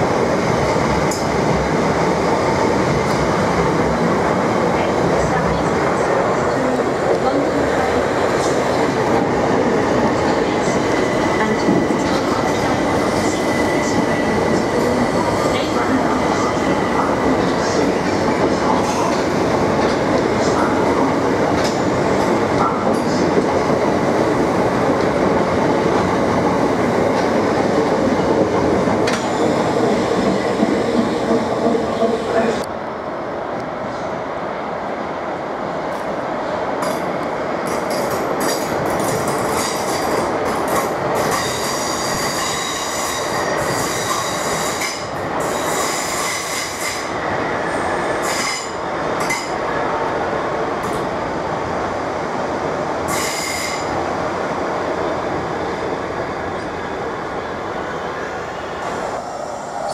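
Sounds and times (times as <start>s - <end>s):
train wheels rumbling on rail: 0.0s - 32.8s, 35.6s - 59.9s.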